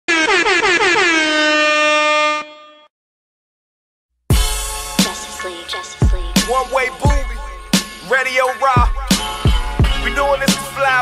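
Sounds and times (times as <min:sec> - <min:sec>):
air horn blasts: 0:00.1 - 0:02.9.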